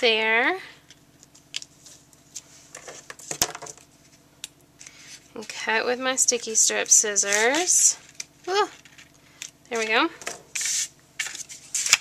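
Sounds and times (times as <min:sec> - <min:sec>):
paper and tape rustling: 0:07.2 - 0:09.1, 0:09.7 - 0:12.0.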